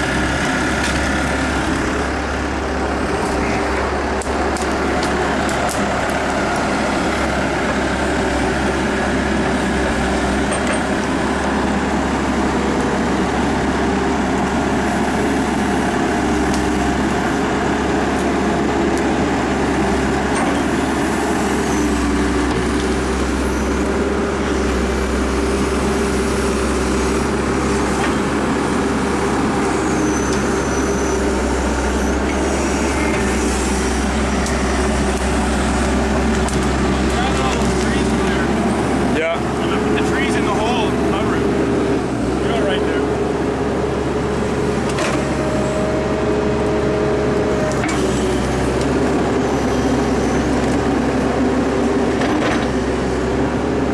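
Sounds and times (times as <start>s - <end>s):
excavator diesel engine: 0.0s - 53.9s.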